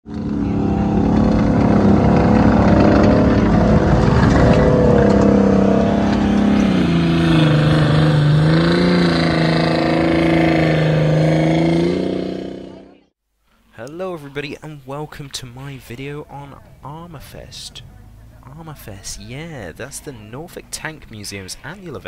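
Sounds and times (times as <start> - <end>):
tank engine running loud: 0.1 - 13.1.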